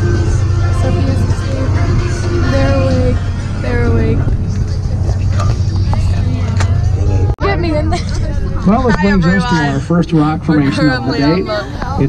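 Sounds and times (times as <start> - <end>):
bus engine and road noise: 0.0 - 12.0
voices: 0.0 - 12.0.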